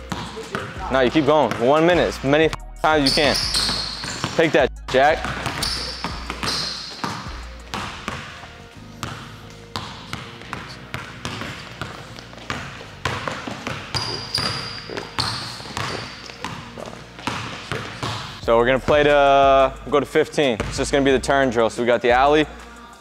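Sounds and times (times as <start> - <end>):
basketball bouncing on wood floor: 0.0 - 2.1, 3.0 - 8.4, 9.0 - 19.1, 20.6 - 20.9
sneaker squeaks: 0.0 - 2.1, 2.9 - 4.6, 5.2 - 18.4.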